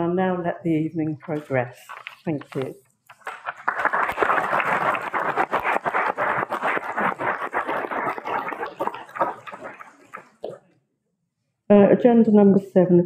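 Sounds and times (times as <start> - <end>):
people clapping: 3.2 - 10.5.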